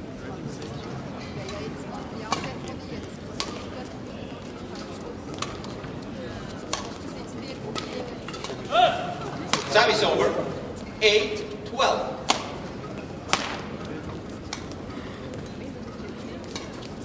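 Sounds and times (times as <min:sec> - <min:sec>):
crowd murmur: 0:00.0 - 0:17.0
rackets striking shuttlecock: 0:03.4 - 0:03.7, 0:05.3 - 0:07.1, 0:07.7 - 0:09.8, 0:12.2 - 0:14.9.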